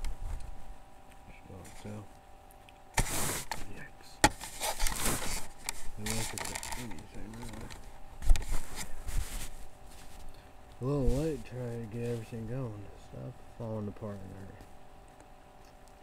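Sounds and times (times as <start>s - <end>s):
rustling and handling noises: 0.0s - 16.0s.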